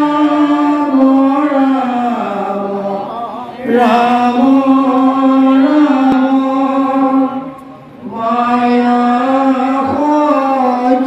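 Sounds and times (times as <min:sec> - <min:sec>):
men chanting into microphones: 0:00.0 - 0:11.0.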